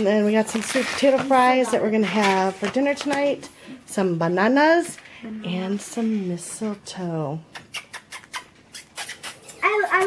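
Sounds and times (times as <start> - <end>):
woman speaking in high voice: 0.0 - 3.4.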